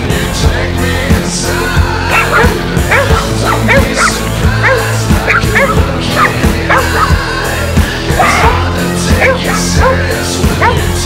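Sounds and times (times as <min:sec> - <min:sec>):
rock song: 0:00.0 - 0:11.0
dogs barking and yipping: 0:02.0 - 0:07.3, 0:08.2 - 0:11.0.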